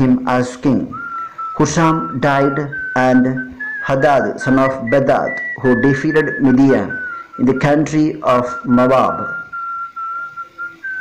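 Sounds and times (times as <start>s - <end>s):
high whistle-like tone: 0.6s - 11.0s.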